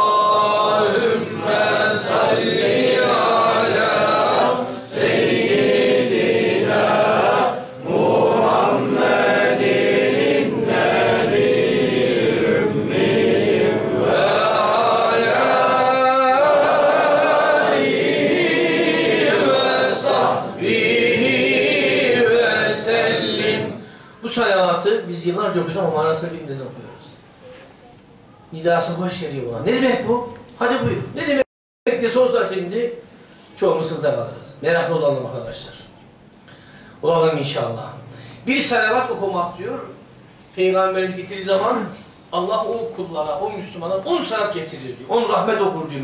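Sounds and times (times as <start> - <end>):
men chanting in unison: 0.0 - 23.8.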